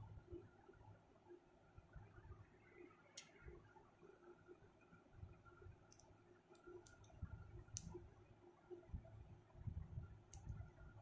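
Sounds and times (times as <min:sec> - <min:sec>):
soft low rumbles: 0:06.9 - 0:11.0.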